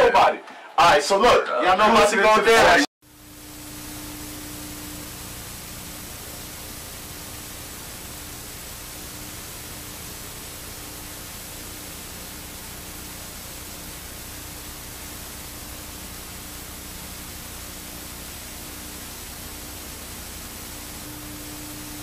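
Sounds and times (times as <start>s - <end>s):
static hiss: 2.6s - 22.0s
faint low hum: 14.3s - 22.0s.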